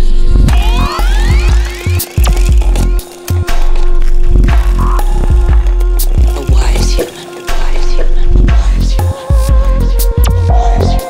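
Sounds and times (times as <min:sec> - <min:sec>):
deep bass line: 0:00.0 - 0:11.0
electronic music: 0:00.3 - 0:11.0
kick and hi-hat beat: 0:00.5 - 0:11.0.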